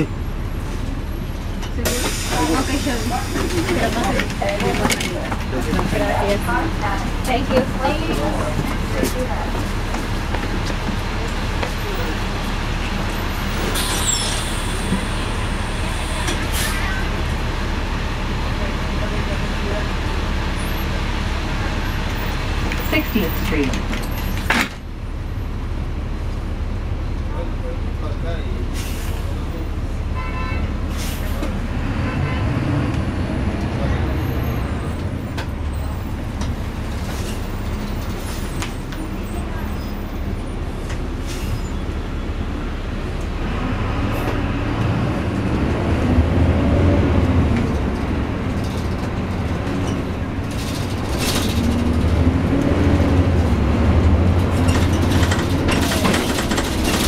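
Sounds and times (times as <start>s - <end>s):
bus diesel engine accelerating: 0.0s - 57.0s.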